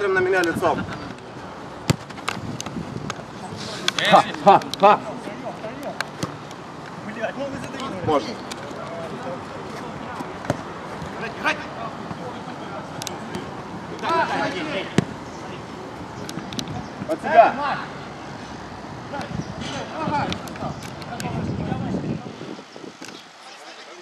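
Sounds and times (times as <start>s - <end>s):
ball kicks: 1.8s - 2.3s.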